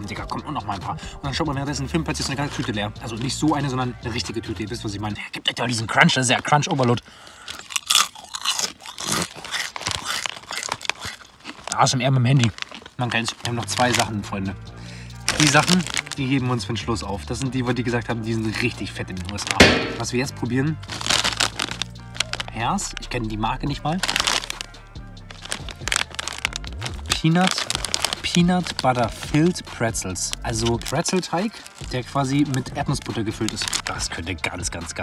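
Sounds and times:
background music: 0:00.0 - 0:35.0
potato crisps crunching: 0:07.2 - 0:14.5, 0:15.2 - 0:16.6, 0:17.3 - 0:20.2, 0:20.8 - 0:24.7, 0:25.3 - 0:34.2
plastic snack bag crinkling: 0:07.4 - 0:14.2, 0:15.2 - 0:16.6, 0:18.2 - 0:20.2, 0:20.8 - 0:24.7, 0:25.3 - 0:29.6, 0:30.2 - 0:34.2.

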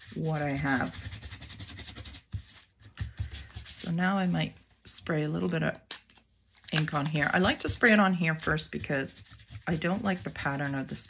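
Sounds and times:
paintbrush scratching on paper: 0:00.0 - 0:04.4, 0:07.2 - 0:11.0.

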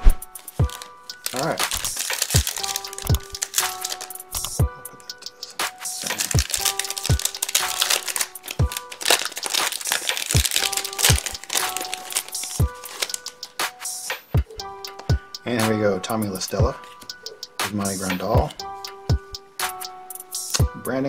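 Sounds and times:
background music with steady beat: 0:00.0 - 0:21.0
plastic wrapper crinkling and tearing: 0:00.5 - 0:04.6, 0:05.8 - 0:13.5.

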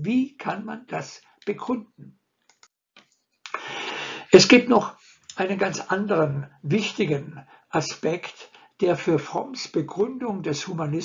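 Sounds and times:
man speaking: 0:00.0 - 0:02.0, 0:03.5 - 0:11.0
man's sharp in-breath: 0:03.5 - 0:04.4.

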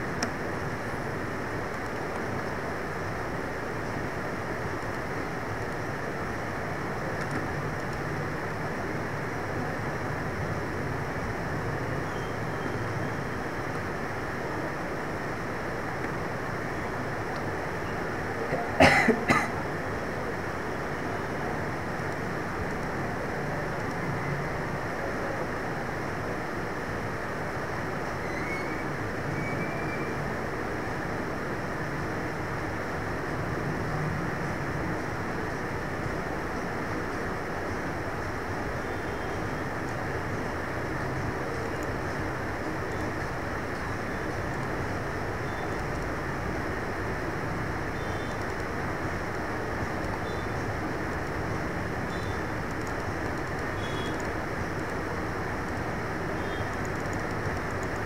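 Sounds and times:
steady background noise: 0:00.0 - 0:58.0.

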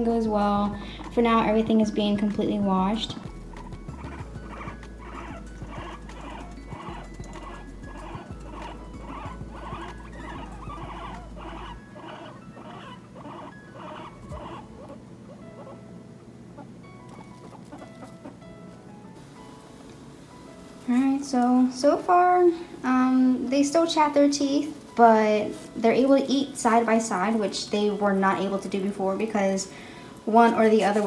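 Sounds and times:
guinea pigs chewing hay: 0:00.0 - 0:15.8, 0:16.6 - 0:18.8, 0:20.6 - 0:31.0.

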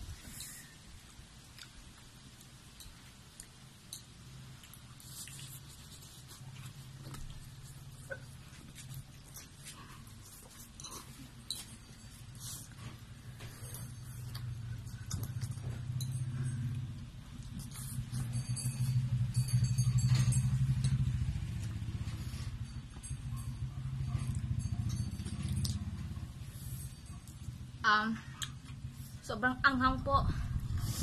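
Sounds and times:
steady low hum: 0:00.0 - 0:31.0
chewing: 0:00.2 - 0:27.6, 0:28.2 - 0:29.2.

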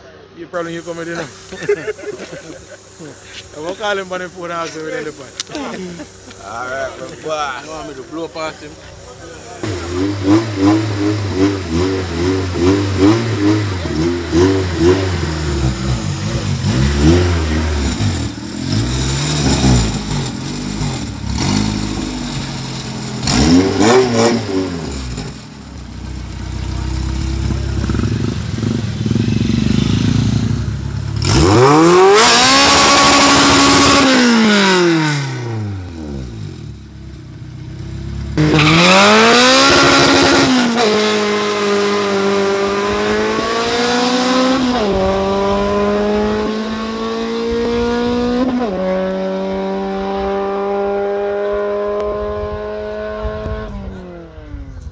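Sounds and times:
car engine revving: 0:00.6 - 0:54.5
car accelerating away: 0:00.8 - 0:54.9.

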